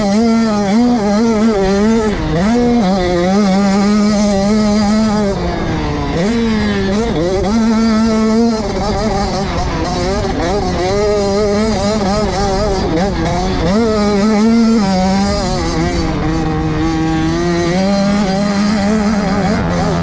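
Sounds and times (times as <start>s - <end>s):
motocross bike engine revving: 0.0s - 20.0s.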